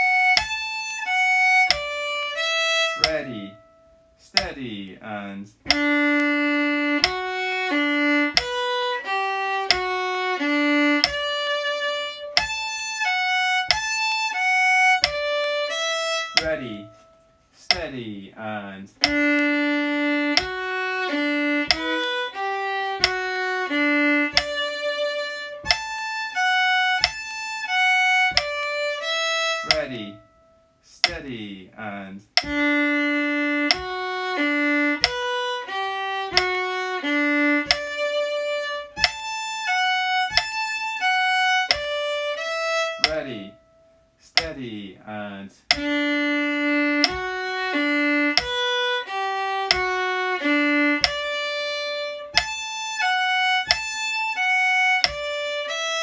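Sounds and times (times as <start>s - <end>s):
solo fiddle playing slowly: 0.0s - 56.0s.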